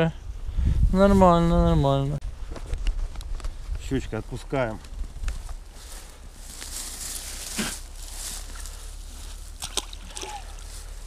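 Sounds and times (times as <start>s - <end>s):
wind noise on microphone: 0.0s - 3.9s, 4.9s - 5.7s
dry reeds rustling: 2.4s - 11.0s
fish splashing into water: 9.5s - 10.8s.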